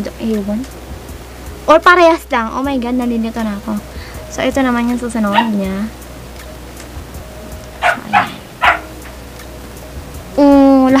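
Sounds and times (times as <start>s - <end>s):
dog barking: 5.3s - 5.7s, 7.8s - 9.1s.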